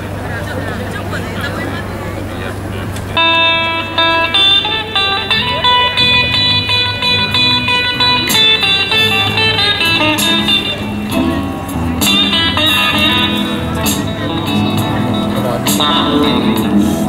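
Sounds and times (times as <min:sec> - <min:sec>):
crowd chatter: 0:00.0 - 0:17.0
plucked guitar music: 0:02.7 - 0:17.0.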